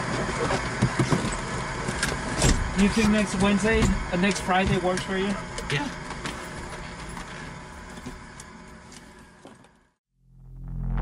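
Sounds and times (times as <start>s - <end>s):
steady background noise: 0.0s - 9.9s.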